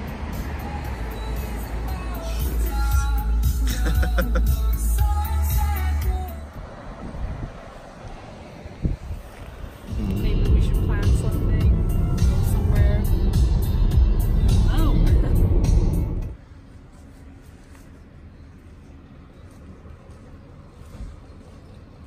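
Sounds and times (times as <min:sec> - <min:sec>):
background music: 0:00.0 - 0:06.6, 0:09.9 - 0:16.4
road and engine rumble in car: 0:00.0 - 0:22.0
voices: 0:09.9 - 0:16.3.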